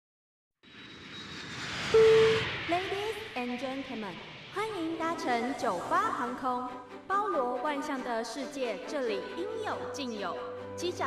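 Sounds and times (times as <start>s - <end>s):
bright tone: 1.9s - 2.6s.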